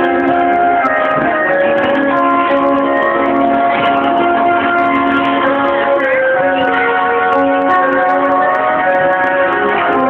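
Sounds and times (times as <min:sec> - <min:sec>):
acoustic guitar: 0:00.0 - 0:10.0
flute slow melody: 0:00.0 - 0:10.0.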